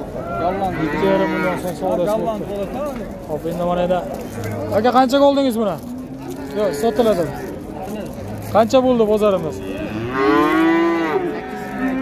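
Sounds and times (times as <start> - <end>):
calf mooing: 0.6 - 1.6, 6.2 - 7.6, 9.8 - 12.0.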